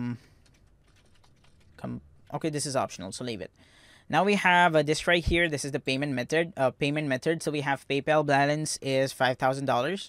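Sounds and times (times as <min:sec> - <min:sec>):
typing on computer keyboard: 0:00.2 - 0:01.8.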